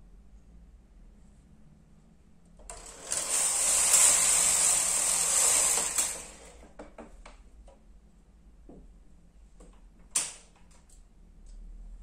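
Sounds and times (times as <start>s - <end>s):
knitting machine carriage: 2.7s - 6.8s.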